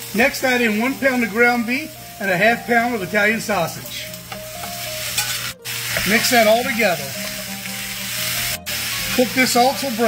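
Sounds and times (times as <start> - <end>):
meat sizzling in a skillet: 0.0 - 10.0
masher stirring meat: 2.2 - 10.0.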